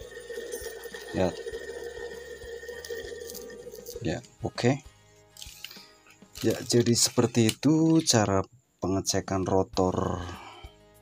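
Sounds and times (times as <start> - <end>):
armature spinning with steady whine: 0.0 - 4.0.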